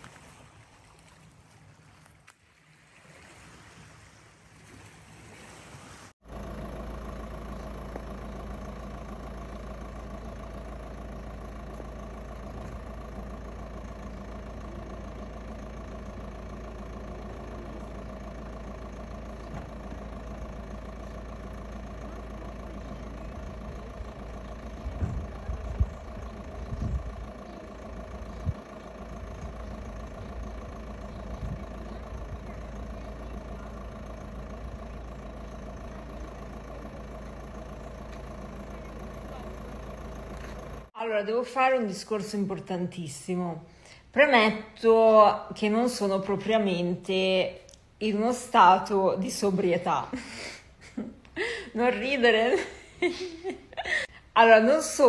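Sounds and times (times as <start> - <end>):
car engine idling: 6.2 - 55.0.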